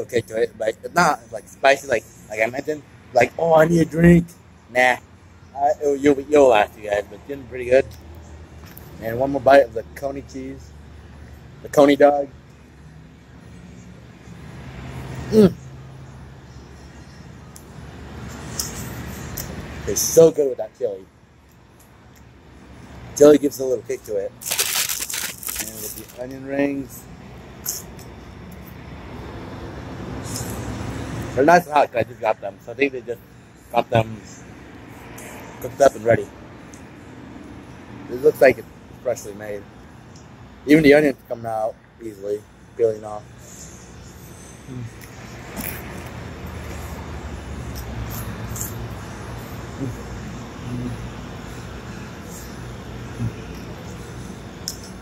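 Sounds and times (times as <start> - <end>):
low traffic rumble: 0.0 - 55.0
crunchy chewing: 24.4 - 26.2, 47.7 - 48.9.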